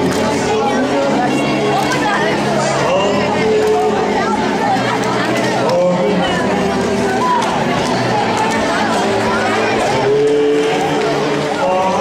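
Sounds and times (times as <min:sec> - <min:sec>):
man singing into a microphone: 0:00.0 - 0:04.3, 0:05.5 - 0:07.2, 0:10.0 - 0:12.0.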